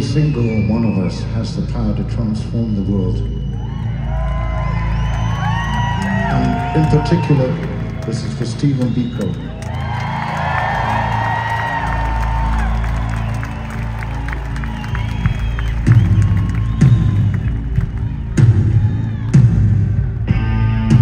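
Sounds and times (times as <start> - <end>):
crowd cheering and whooping: 3.3 - 20.5
heavy slow drum beats: 15.1 - 21.0.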